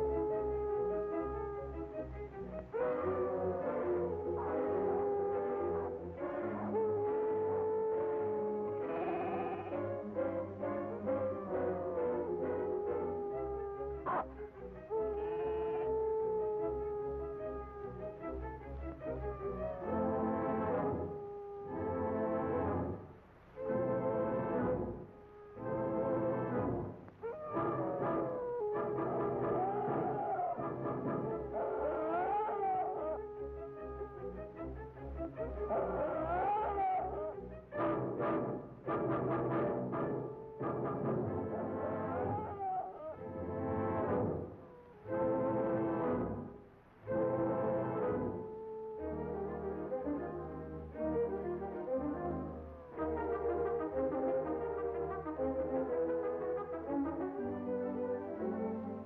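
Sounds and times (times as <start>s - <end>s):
orchestral music with horns and brass: 0.0s - 16.6s, 17.3s - 32.2s, 33.2s - 42.5s, 43.1s - 59.0s.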